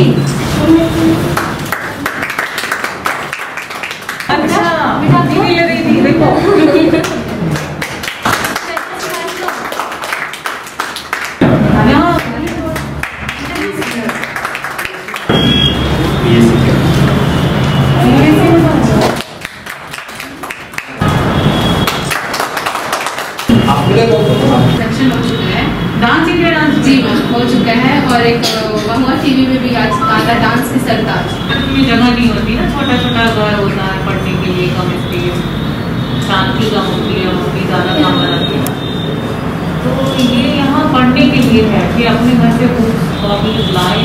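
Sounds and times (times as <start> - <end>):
people clapping: 1.3 - 4.6, 6.9 - 16.2, 18.8 - 23.9.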